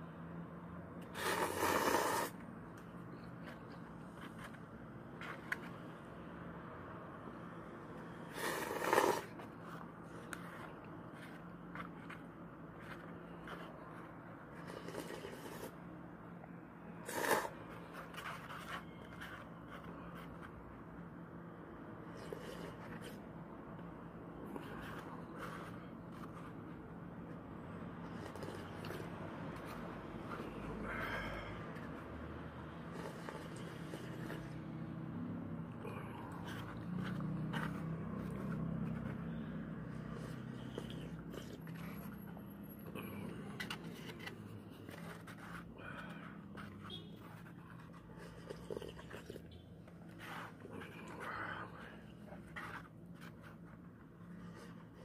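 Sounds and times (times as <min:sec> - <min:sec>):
person slurping soup: 0:01.1 - 0:02.4, 0:08.2 - 0:09.4, 0:14.6 - 0:15.8, 0:17.0 - 0:17.6, 0:28.1 - 0:29.0, 0:48.2 - 0:49.5.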